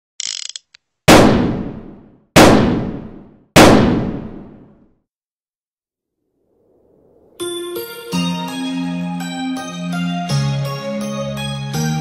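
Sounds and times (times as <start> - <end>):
gun being cocked: 0.2 - 0.8
loud gunshots: 1.1 - 4.8.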